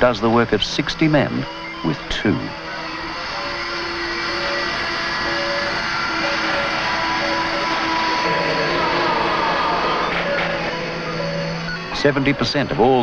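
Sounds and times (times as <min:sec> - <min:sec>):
low hum: 0:00.0 - 0:13.0
machine tools whining: 0:00.0 - 0:13.0
tone sliding downward: 0:00.0 - 0:13.0.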